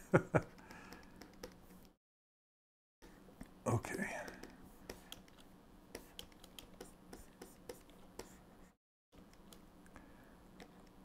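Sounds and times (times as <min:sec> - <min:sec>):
low steady hum: 0:03.0 - 0:11.0.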